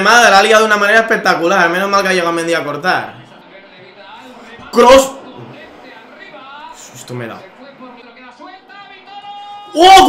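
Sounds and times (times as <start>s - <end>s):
sports commentator talking: 0.0s - 10.0s.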